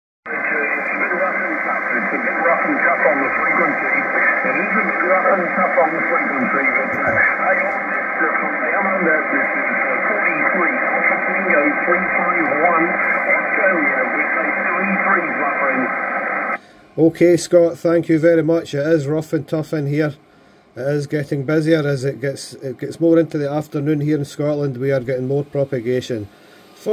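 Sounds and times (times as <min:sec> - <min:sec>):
faint radio voice: 0:00.3 - 0:16.0
radio static: 0:00.3 - 0:16.6.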